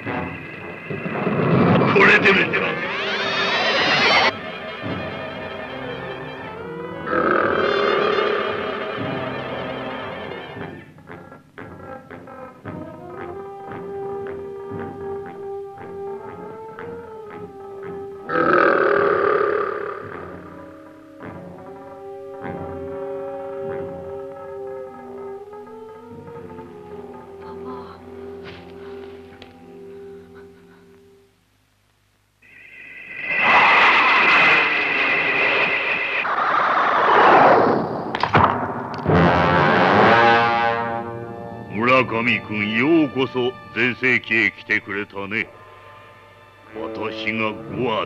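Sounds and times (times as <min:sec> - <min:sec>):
high electronic whine: 0:00.0 - 0:04.5, 0:32.4 - 0:38.2
eerie background music: 0:00.0 - 0:31.0, 0:32.4 - 0:48.0
monster roar: 0:01.7 - 0:04.3, 0:18.3 - 0:20.5
loud hissing rush: 0:32.4 - 0:37.1.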